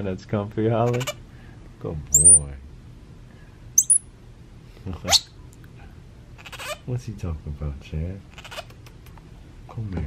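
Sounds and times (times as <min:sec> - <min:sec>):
monkey high-pitched chirp: 0:02.2 - 0:02.4, 0:03.8 - 0:04.1, 0:05.1 - 0:05.3, 0:06.4 - 0:06.8, 0:08.3 - 0:08.9.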